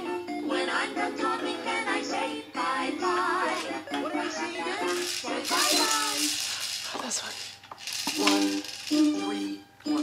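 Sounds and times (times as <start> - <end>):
tinny synthesized melody with singing: 0.0 - 6.8, 7.9 - 10.0
shaker-like rattle: 4.8 - 9.4.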